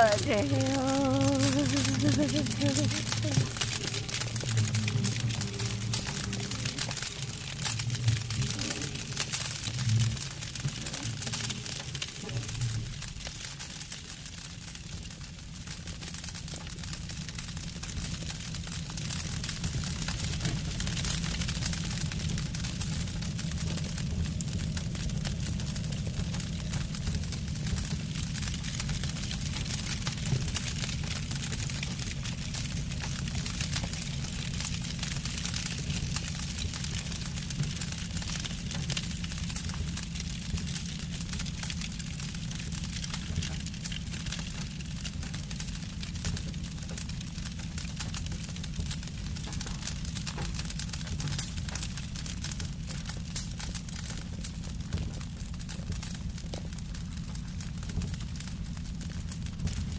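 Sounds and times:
hiss and fine crackling: 0.0 - 14.2.

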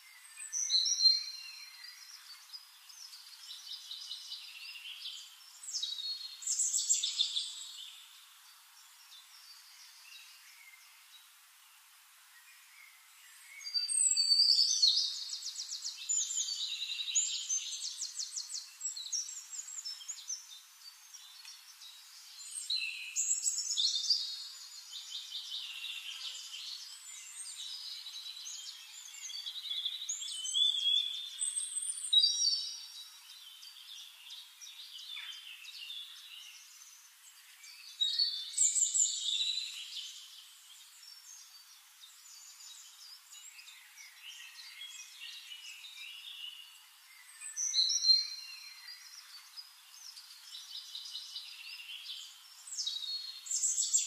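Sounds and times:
faint hiss: 0.0 - 54.0
small birds trilling and chirping: 0.0 - 54.0.

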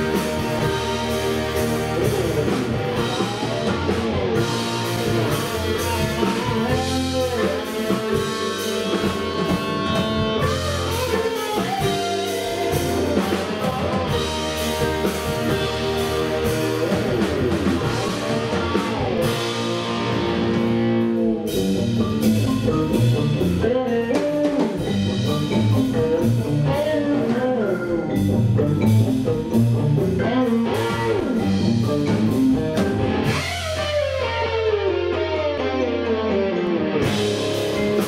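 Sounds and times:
bending electric guitar notes: 0.0 - 38.0
instrumental rock band playing: 0.0 - 38.0.

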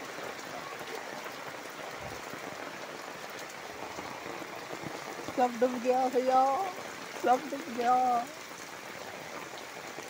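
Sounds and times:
rain falling on water: 0.0 - 10.0.

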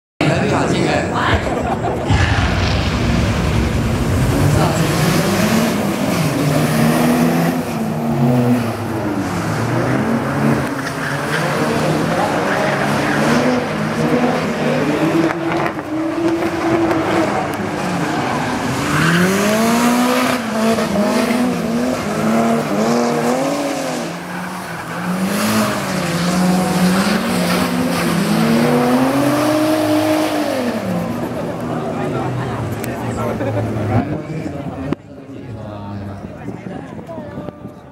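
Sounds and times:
car engines revving: 0.2 - 37.1.

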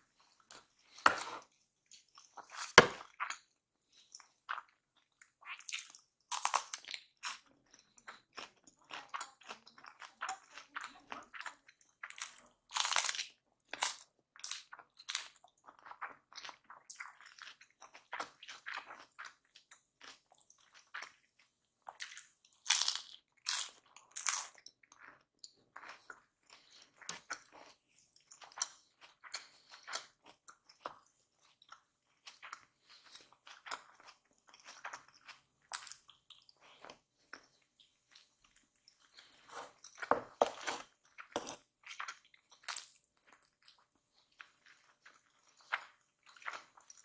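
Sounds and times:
crunchy wet chewing: 0.4 - 47.0.

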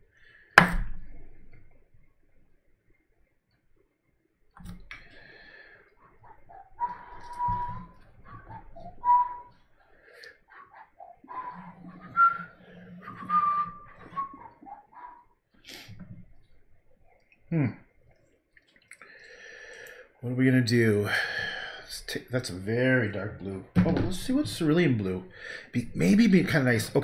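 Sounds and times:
soft whistled notes: 6.0 - 15.4.

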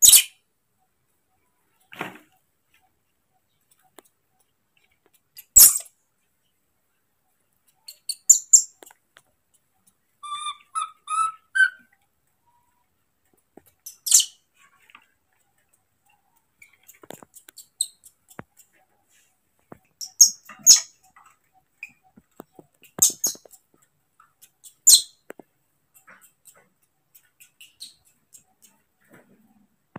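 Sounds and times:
baby monkey squeaks: 0.0 - 0.4, 5.4 - 5.9, 7.8 - 8.8, 10.2 - 11.9, 13.8 - 14.4, 16.6 - 18.3, 20.0 - 21.0, 23.0 - 23.6, 24.4 - 25.2, 27.4 - 28.8
baby monkey chirping calls: 10.2 - 11.9, 13.8 - 14.4, 19.9 - 22.2, 23.0 - 23.6, 24.4 - 25.2, 27.2 - 28.8.

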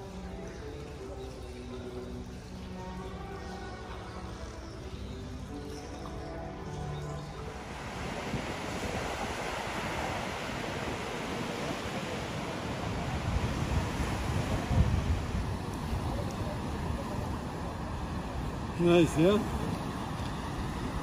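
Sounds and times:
music: 0.0 - 21.0
sea waves breaking on beach: 6.2 - 21.0
wind buffeting microphone: 7.6 - 21.0.

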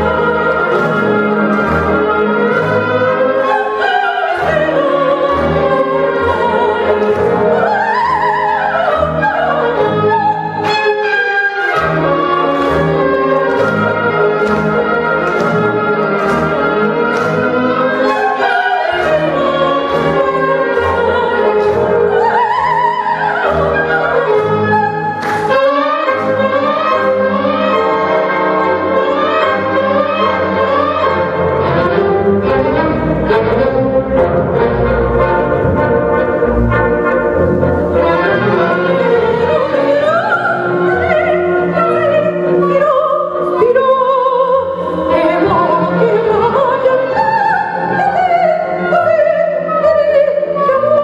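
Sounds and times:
orchestral music with brass: 0.0 - 51.0.

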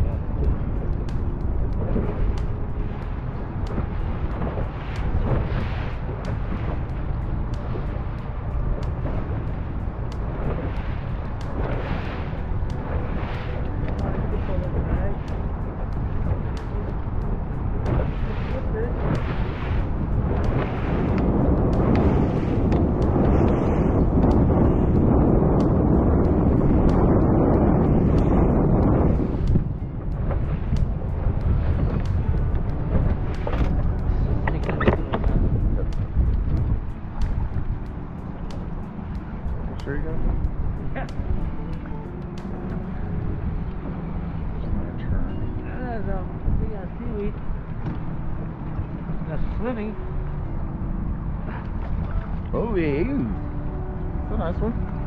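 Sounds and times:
water rushing past: 0.0 - 55.0
wind buffeting microphone: 0.0 - 55.0.

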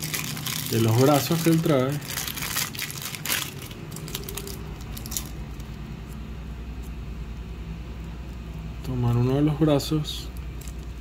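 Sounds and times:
plastic zip bag crinkling: 0.0 - 5.8.

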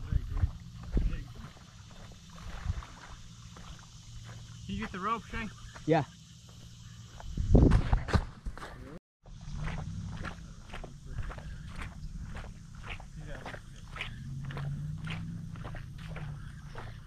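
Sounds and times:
footsteps: 0.1 - 17.0.

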